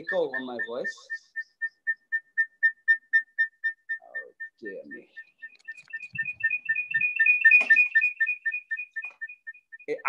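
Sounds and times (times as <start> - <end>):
pulsing feedback whistle: 0.0 - 10.0.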